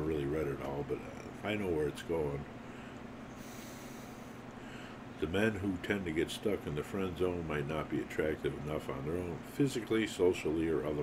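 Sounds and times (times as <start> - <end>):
low room noise: 0.0 - 11.0
faint breath through nose: 2.6 - 5.0.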